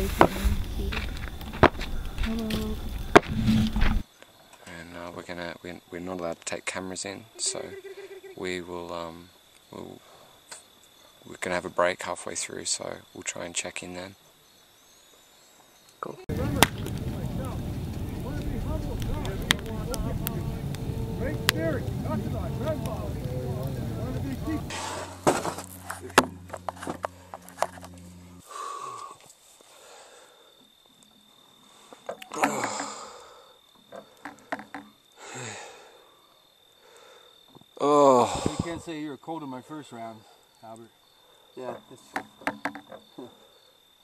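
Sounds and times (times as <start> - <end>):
wood fire roaring and crackling: 0.0 - 4.0, 16.0 - 39.0
man sighing and breathing heavily: 28.4 - 30.6, 32.3 - 33.6, 35.2 - 36.2, 36.8 - 38.8.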